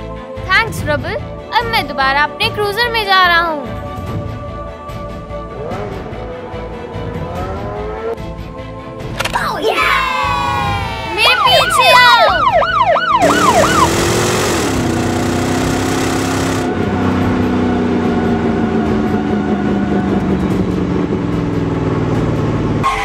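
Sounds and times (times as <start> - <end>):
electronic toy siren wail: 11.2 - 14.8.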